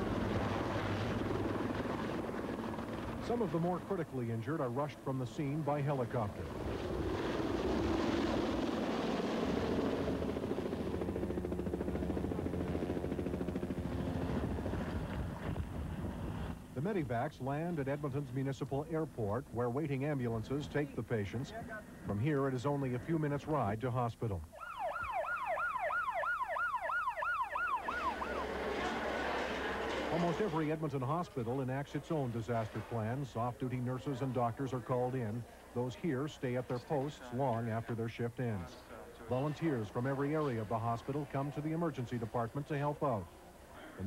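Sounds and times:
helicopter rotor beating: 0.0s - 17.0s, 25.9s - 33.4s
steady rush of noise: 0.0s - 19.6s
ambulance siren yelping: 24.5s - 30.2s.

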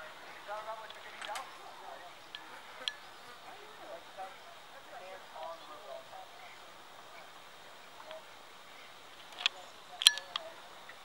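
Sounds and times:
distant voices talking: 0.0s - 11.0s
light clicks: 0.8s - 1.6s, 9.2s - 11.0s.

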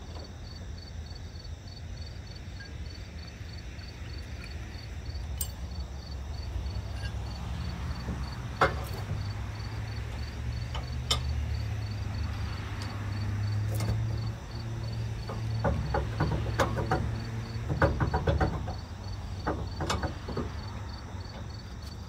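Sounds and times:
metal hitch clinking: 5.3s - 5.8s, 6.7s - 9.2s, 10.6s - 11.4s.

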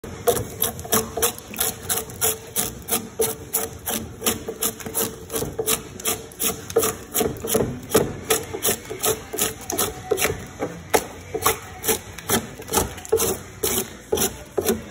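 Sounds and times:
drawknife scraping bark: 0.3s - 14.9s.

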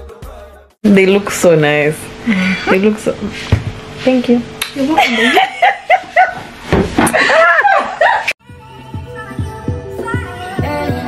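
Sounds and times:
background music with bass notes: 0.0s - 0.8s, 8.4s - 11.0s.

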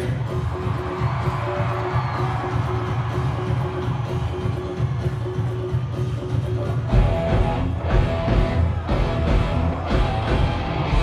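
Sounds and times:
crowd cheering and whooping: 0.0s - 6.3s, 7.8s - 11.0s.

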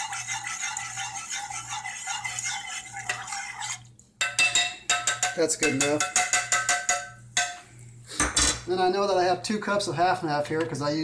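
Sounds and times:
plastic spoon knocking on saucepan: 4.2s - 7.6s.

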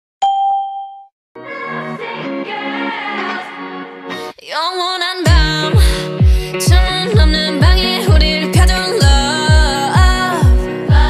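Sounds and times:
bright bell-like ding: 0.2s - 1.1s
pop music with sustained chords: 1.4s - 11.0s.

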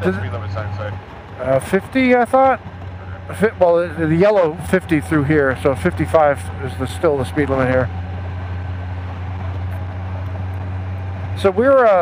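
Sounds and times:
motorcycle engine cruising: 0.0s - 12.0s
wind and road noise: 0.0s - 12.0s.

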